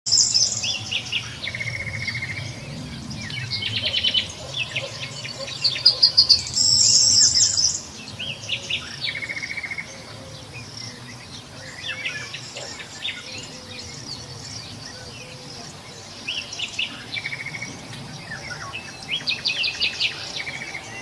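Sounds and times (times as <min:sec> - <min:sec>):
birds chirping: 0:00.1 - 0:21.0.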